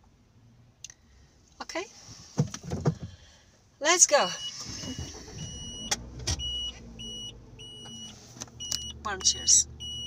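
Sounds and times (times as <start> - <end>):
car warning chime beeping: 4.1 - 10.0
low cabin hum: 4.1 - 10.0.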